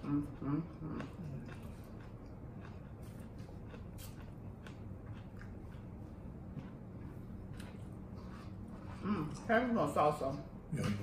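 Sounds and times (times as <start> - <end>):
chewing and crunching: 0.0 - 9.5.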